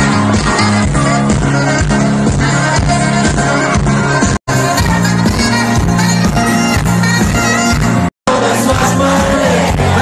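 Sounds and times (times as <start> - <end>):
live pop music through speakers: 0.0 - 10.0.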